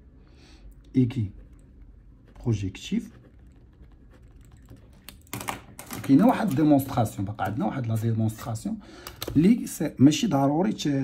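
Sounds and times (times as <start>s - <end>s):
ballpoint pen scratching on paper: 1.4s - 5.4s.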